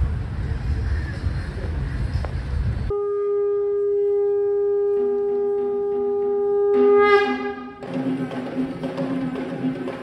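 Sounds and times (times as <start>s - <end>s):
curved horns blowing: 2.9s - 7.9s.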